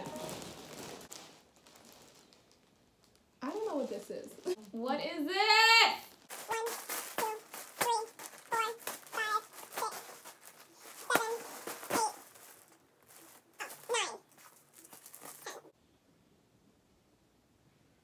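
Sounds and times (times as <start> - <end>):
plastic bag crinkling: 0.0 - 4.9, 6.1 - 15.7
woman making high-pitched sounds: 13.6 - 14.3.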